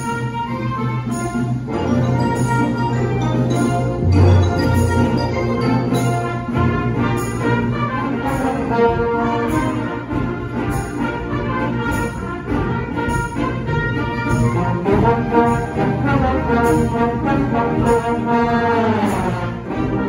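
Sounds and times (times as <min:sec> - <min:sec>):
brass section: 0:00.0 - 0:20.0
concert band playing: 0:00.0 - 0:20.0.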